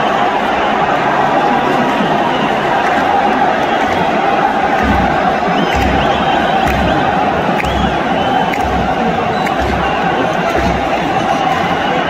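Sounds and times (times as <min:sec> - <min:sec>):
crowd chanting and cheering: 0:00.0 - 0:12.0
bass drum beating: 0:04.6 - 0:12.0.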